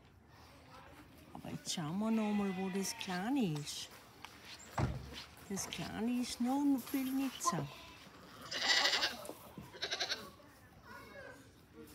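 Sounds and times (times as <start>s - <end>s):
goat bleating: 7.4s - 10.4s.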